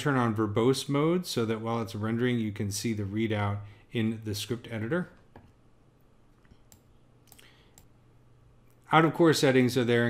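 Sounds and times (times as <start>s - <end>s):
computer mouse clicks: 6.4s - 8.0s.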